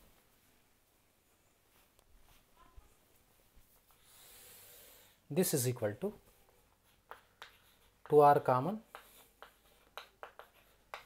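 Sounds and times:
chalk writing on blackboard: 6.2 - 11.0.

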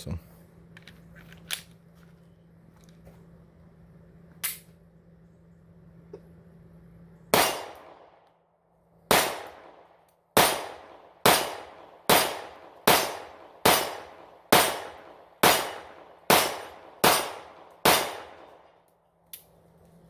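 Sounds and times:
pistol shots echoing: 7.3 - 8.2, 9.1 - 18.8.

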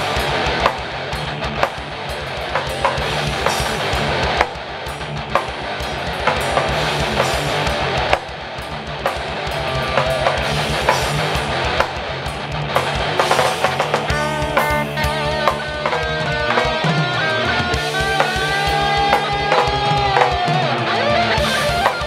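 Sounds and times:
heavy metal band playing: 0.0 - 22.0.

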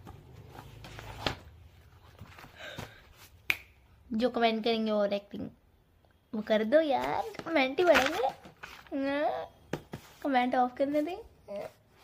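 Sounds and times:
finger snap: 3.4 - 3.8.

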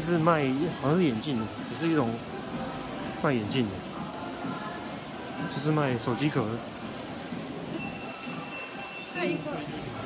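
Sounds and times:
indoor mall background hum: 0.0 - 10.0.

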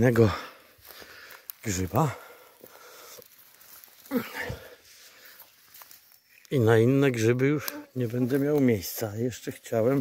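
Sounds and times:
footsteps through grass and leaves: 0.0 - 10.0.

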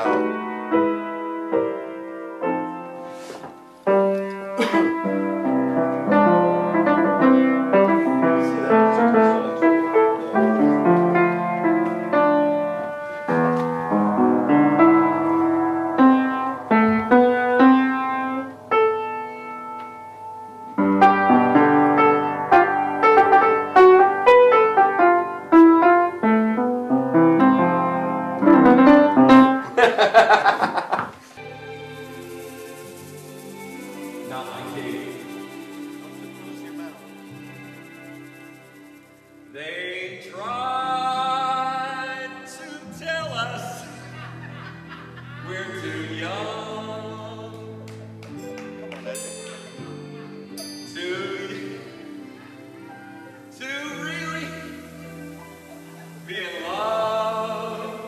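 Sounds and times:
upright piano playing: 0.0 - 58.0.

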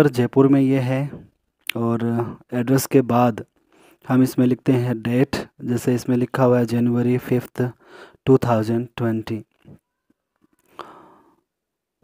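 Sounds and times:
man's short breath: 10.6 - 11.5.

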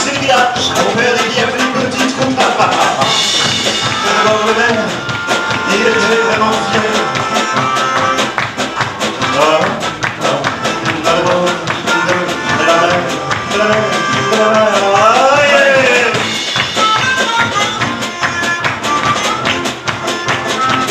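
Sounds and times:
band playing pop song: 0.0 - 20.9.

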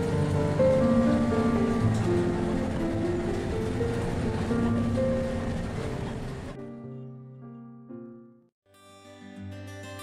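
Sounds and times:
slow melodic background music: 0.0 - 10.0.

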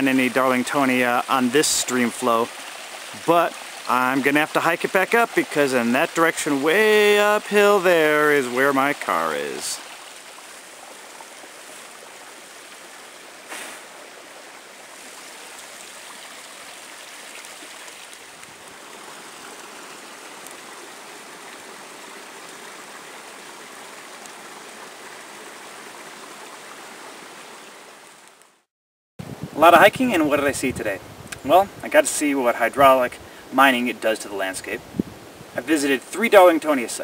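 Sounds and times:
stream rushing over rocks: 0.0 - 28.6, 31.4 - 37.0.

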